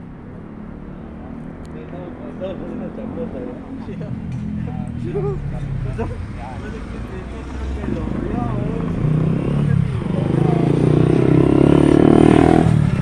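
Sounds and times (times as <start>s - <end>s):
low rumble of street traffic: 0.0s - 13.0s
motorcycle engine approaching: 0.0s - 13.0s.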